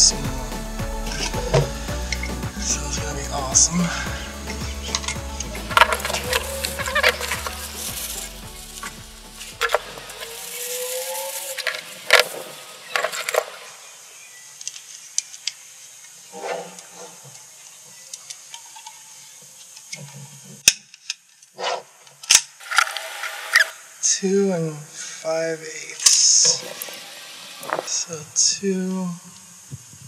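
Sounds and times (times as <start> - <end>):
background music: 0.0 - 11.3
tissue paper rustling: 3.8 - 13.6.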